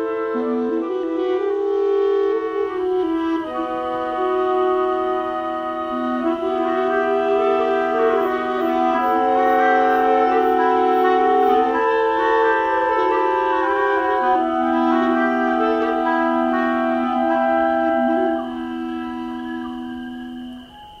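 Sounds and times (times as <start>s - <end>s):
double flute playing slow tune: 0.0s - 21.0s.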